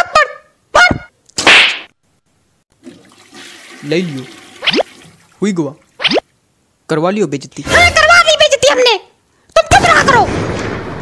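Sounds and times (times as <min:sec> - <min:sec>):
cartoon slap smack: 0:00.9 - 0:01.9.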